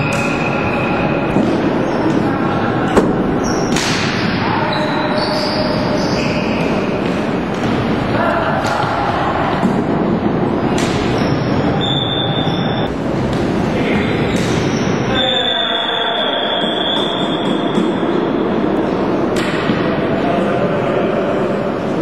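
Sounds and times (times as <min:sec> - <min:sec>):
voices and court noise: 0:00.0 - 0:22.0.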